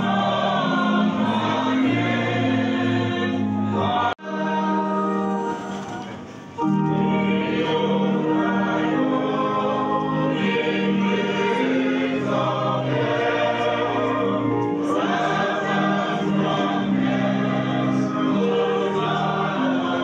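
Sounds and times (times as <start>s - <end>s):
group singing a hymn: 0.0s - 5.8s, 6.6s - 20.0s.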